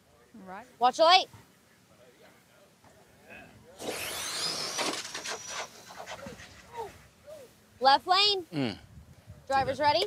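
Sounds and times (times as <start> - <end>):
high motor whine: 3.7 - 6.7
tyre and motor noise burst: 3.8 - 6.8.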